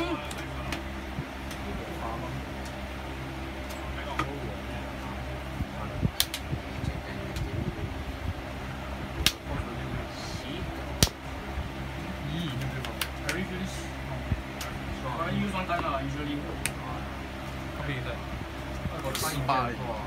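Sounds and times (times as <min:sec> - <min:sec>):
fan humming: 0:00.0 - 0:20.0.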